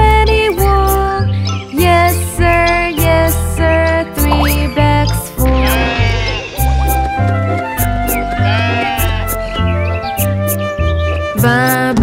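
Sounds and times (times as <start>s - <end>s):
upbeat children's song music: 0.0s - 12.0s
sheep bleating: 5.5s - 6.8s, 8.4s - 9.5s.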